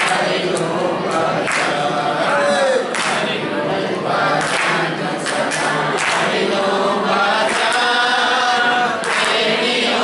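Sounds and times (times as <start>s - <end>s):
hand claps: 0.0s - 1.9s, 2.5s - 3.4s, 4.3s - 6.5s, 7.3s - 10.0s
group singing in unison: 0.0s - 10.0s.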